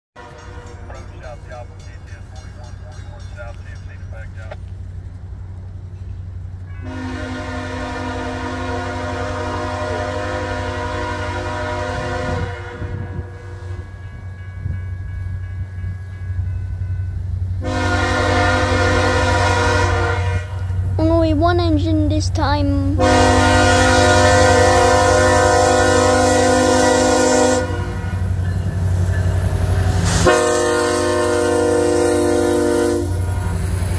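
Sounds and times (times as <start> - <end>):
locomotive horn blasts: 0.2 - 0.9, 6.8 - 13.8, 17.6 - 20.7, 23.0 - 28.4, 30.1 - 33.6.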